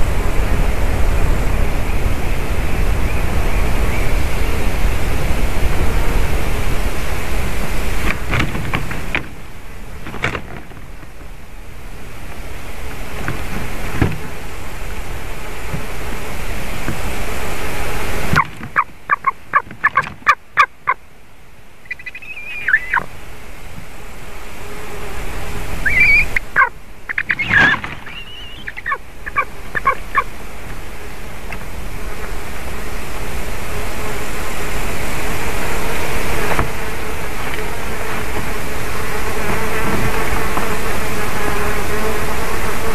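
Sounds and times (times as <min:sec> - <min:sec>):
wind noise: 0:00.0 - 0:20.9, 0:21.9 - 0:42.9
eagle calling: 0:18.4 - 0:21.0, 0:21.8 - 0:23.1, 0:25.8 - 0:30.3.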